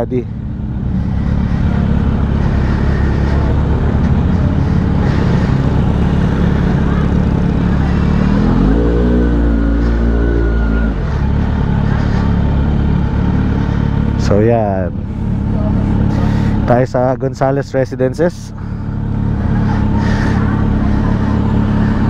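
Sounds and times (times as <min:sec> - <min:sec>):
motorcycle engine idling and revving: 0:00.0 - 0:22.0.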